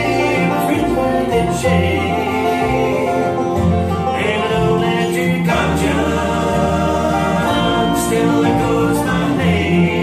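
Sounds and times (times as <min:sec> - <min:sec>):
bluegrass band playing: 0:00.0 - 0:10.0.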